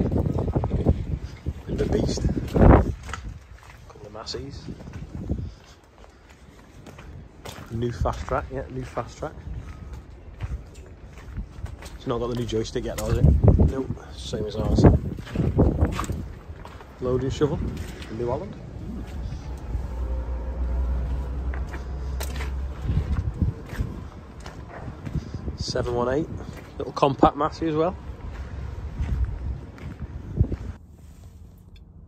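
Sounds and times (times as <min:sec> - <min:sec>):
wind buffeting microphone: 0:00.0 - 0:30.8
footsteps of person walking: 0:00.0 - 0:32.0.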